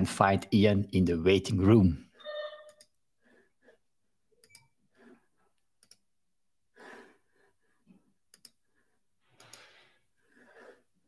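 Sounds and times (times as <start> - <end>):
computer mouse clicks: 4.4 - 4.8, 5.8 - 6.1, 8.3 - 8.6, 9.4 - 9.8
soft breath: 6.7 - 11.0.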